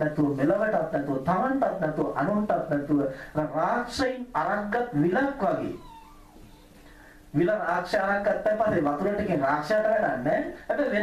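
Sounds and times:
man speaking: 0.0 - 5.9, 7.4 - 11.0
faint steady hum: 0.0 - 11.0
faint gliding tone: 5.6 - 6.8.

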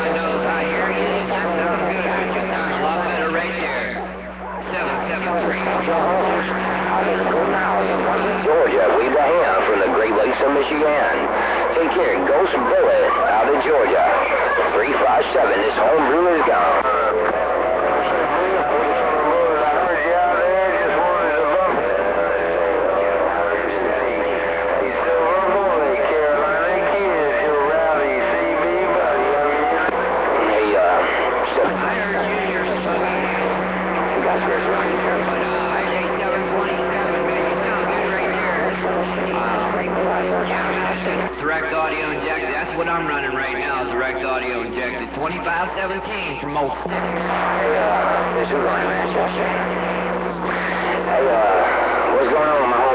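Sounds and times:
distorted radio voices: 0.0 - 52.9.

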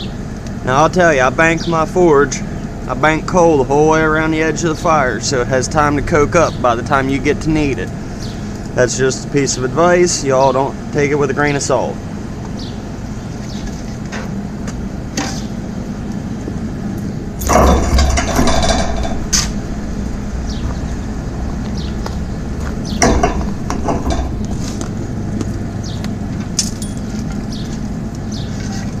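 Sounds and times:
forge air blower humming: 0.0 - 29.0.

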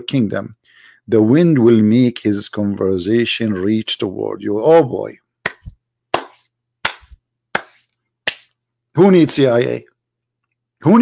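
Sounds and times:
slow hand claps: 5.4 - 8.6.

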